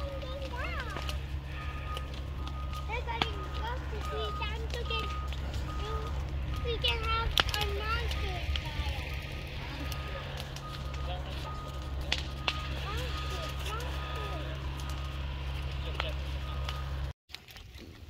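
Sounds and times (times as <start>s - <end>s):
low rumble: 0.0s - 17.1s
sharp crackles: 0.0s - 18.0s.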